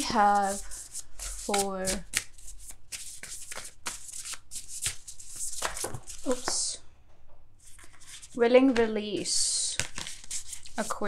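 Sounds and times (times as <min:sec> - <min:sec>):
cards being shuffled: 0:00.0 - 0:06.6, 0:07.6 - 0:11.0.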